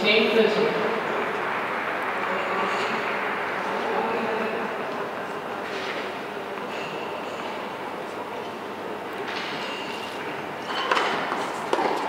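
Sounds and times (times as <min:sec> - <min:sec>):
indoor arena rushing noise: 0:00.0 - 0:12.0.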